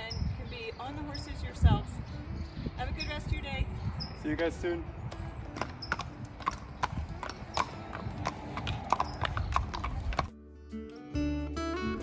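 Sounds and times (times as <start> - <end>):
acoustic guitar music: 4.9 - 12.0
horse hooves clip-clopping on pavement: 5.0 - 10.3.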